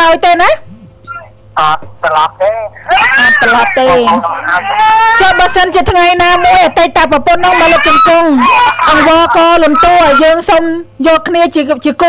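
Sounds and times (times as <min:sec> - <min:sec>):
woman talking: 0:00.0 - 0:00.7, 0:03.2 - 0:04.2, 0:05.1 - 0:12.0.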